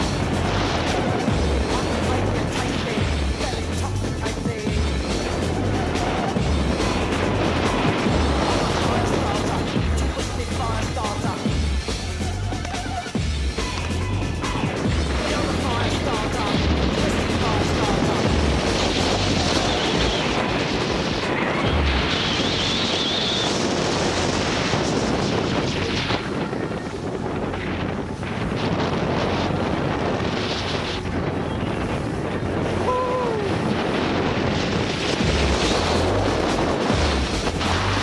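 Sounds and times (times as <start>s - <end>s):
wind rush on microphone: 0.0s - 38.0s.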